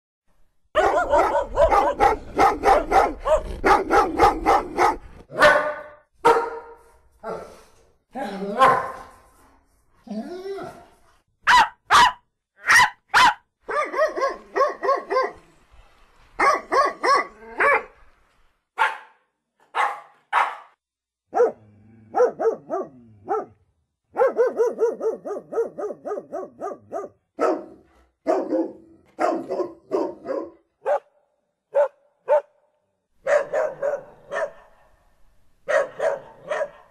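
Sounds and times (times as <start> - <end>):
dog barking angrily: 0.8 - 6.7, 8.6 - 9.1, 11.5 - 15.4, 16.4 - 17.9, 18.8 - 31.1, 31.7 - 32.6, 33.2 - 34.9, 35.7 - 36.9.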